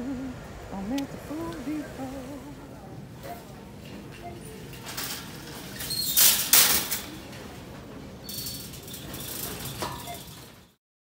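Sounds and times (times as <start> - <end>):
shopping cart frame clattering: 3.2 - 10.8
shopping cart rattling: 3.2 - 10.8.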